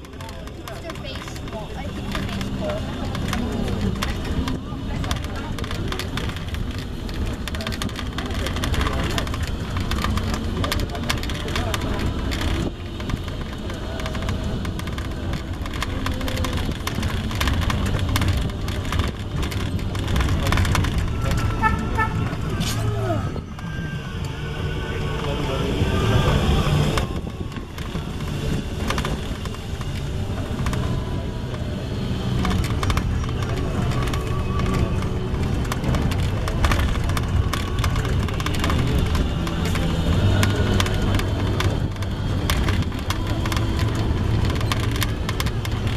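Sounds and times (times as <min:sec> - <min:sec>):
moving buggy rumbling: 0:00.0 - 0:45.9.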